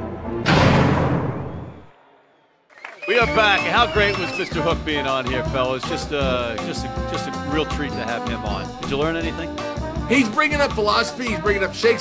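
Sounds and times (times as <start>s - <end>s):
music: 0.0s - 0.7s, 3.0s - 12.0s.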